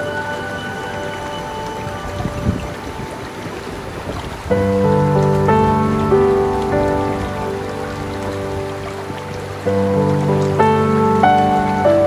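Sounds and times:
river water rushing over rocks: 0.0 - 12.0
soft music of slow chords: 0.0 - 12.0.

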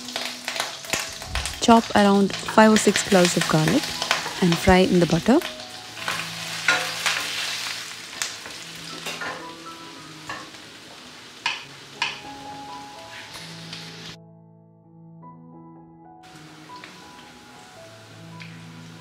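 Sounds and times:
garlic sizzling in a pan: 0.0 - 14.2, 16.3 - 19.0
spatula scraping and knocking pan: 6.0 - 7.6.

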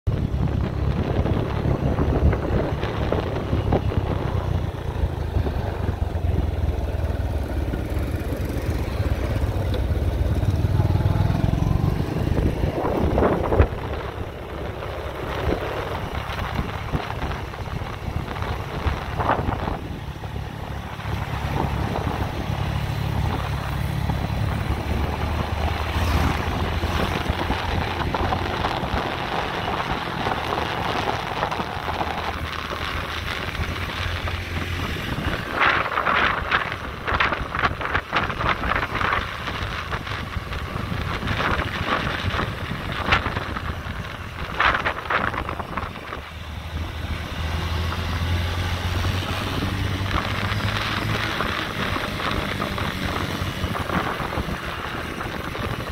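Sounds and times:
motorbike engine running: 0.1 - 55.9
wind buffeting microphone: 0.1 - 55.9.

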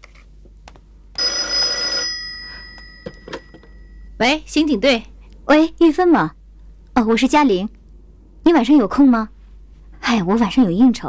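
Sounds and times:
telephone ringing: 1.2 - 4.1.

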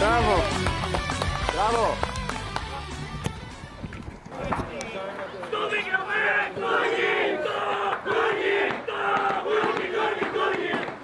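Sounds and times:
group chanting in unison: 5.5 - 11.0.

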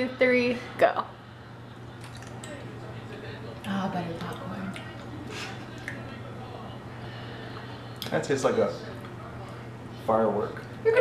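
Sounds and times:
low room hum: 0.0 - 11.0
soft chewing mouth clicks: 2.0 - 2.6, 4.3 - 5.1.

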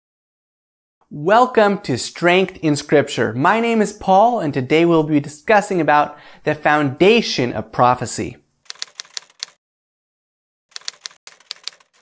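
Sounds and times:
typewriter keystroke clicks: 8.7 - 9.6, 10.7 - 12.0.

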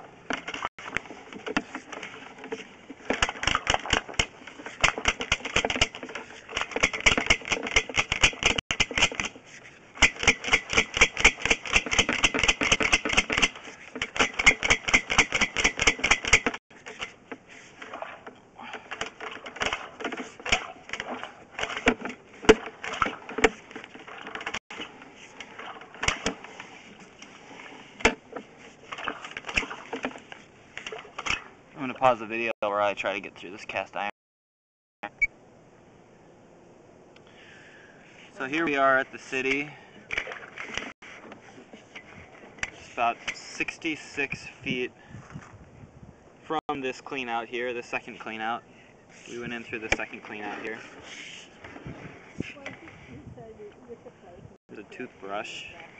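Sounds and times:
rapid clicking of camera rig: 3.1 - 9.4, 10.0 - 17.1.

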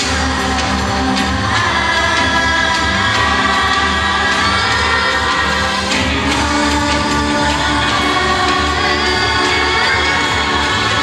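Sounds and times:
children's choir singing: 0.0 - 11.0
instrumental accompaniment with bass: 0.0 - 11.0.

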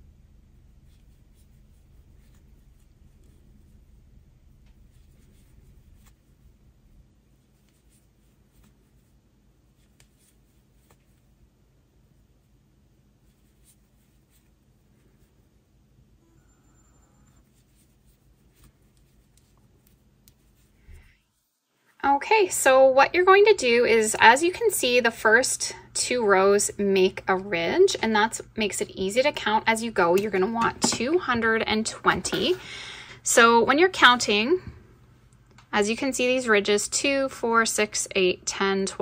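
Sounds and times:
low room hum: 0.0 - 39.0
crochet hook scratching yarn: 0.7 - 6.6, 7.4 - 11.4, 13.2 - 15.7, 16.8 - 22.4
crochet hook scraping yarn: 16.8 - 20.8.

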